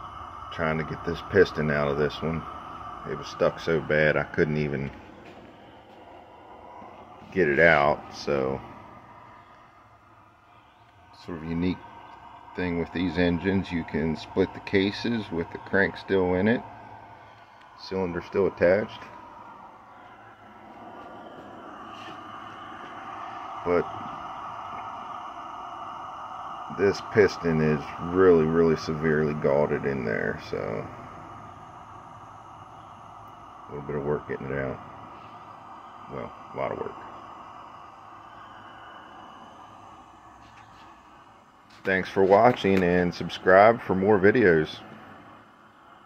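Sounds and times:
gas burner hissing: 0:00.0 - 0:46.0.

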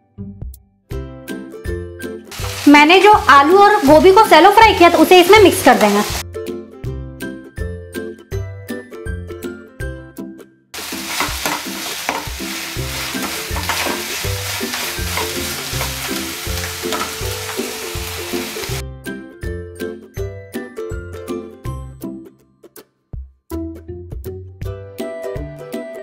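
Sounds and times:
vegetables sizzling: 0:02.3 - 0:06.2, 0:10.8 - 0:18.8
metal spatula scraping: 0:10.8 - 0:18.8.

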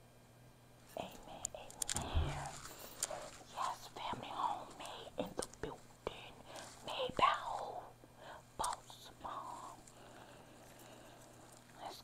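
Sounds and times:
woman whispering: 0:00.9 - 0:10.2, 0:11.6 - 0:12.0.

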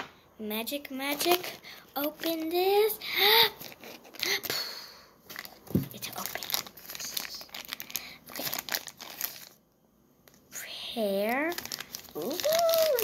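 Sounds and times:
plastic packet crinkling and tearing: 0:01.1 - 0:02.6, 0:05.3 - 0:09.6, 0:11.1 - 0:13.0.

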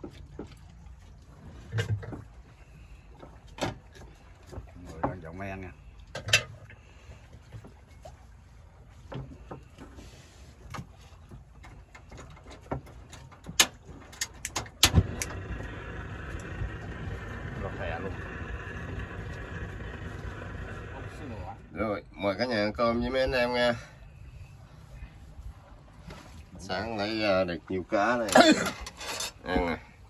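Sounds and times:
boat engine drone: 0:00.0 - 0:30.0
sharp clicks and knocks: 0:11.6 - 0:15.4.

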